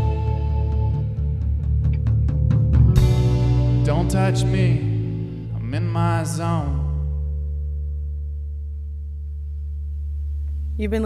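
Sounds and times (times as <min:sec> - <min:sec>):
electric guitar ringing drone: 0:00.0 - 0:02.3.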